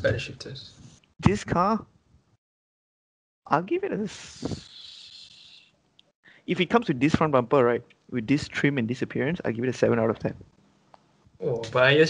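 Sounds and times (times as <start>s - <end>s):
man hissing breath through teeth: 4.2s - 5.7s.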